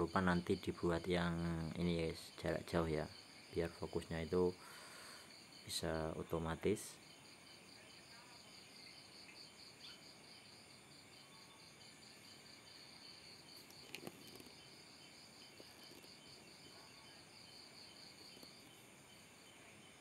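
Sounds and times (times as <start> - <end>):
faint cricket chirping: 0.0 - 20.0.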